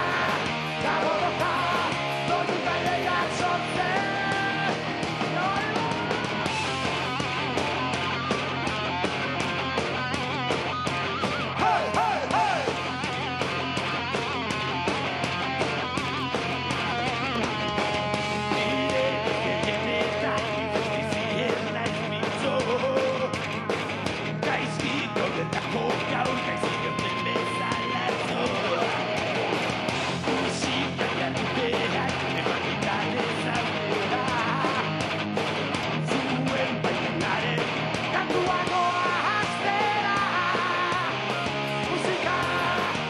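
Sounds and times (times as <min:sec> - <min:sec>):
bass: 0:00.0 - 0:43.0
bending guitar lead line: 0:00.0 - 0:43.0
electric guitars: 0:00.0 - 0:43.0
steady drums: 0:00.0 - 0:43.0.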